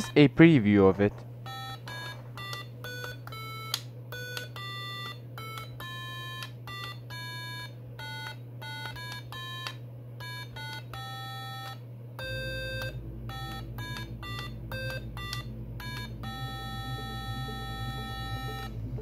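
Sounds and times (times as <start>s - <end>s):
steady low hum: 0.0s - 19.0s
electronic piano beeping notes: 1.5s - 19.0s.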